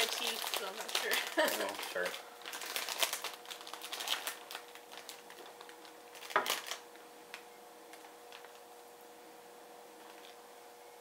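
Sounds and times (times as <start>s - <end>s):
plastic chip bag crinkling: 0.0s - 8.8s, 10.0s - 10.4s.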